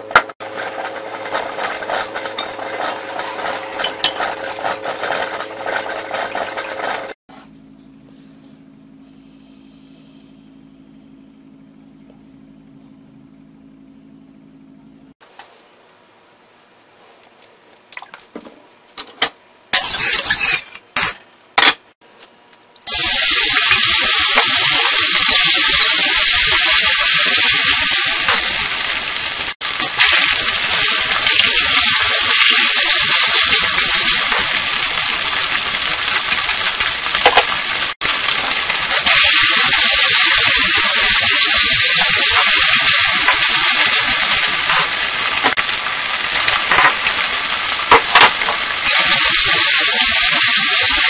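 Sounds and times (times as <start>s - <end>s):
chicken sizzling in hot oil: 22.9s - 51.0s.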